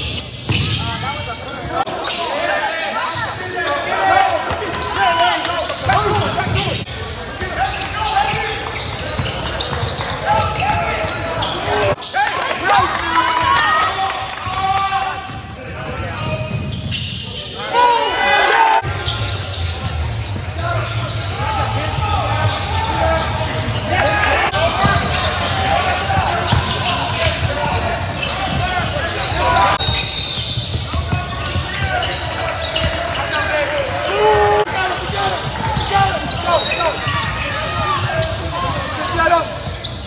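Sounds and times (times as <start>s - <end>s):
sneakers squeaking on hardwood: 0.0s - 12.2s, 15.2s - 17.6s, 19.0s - 40.0s.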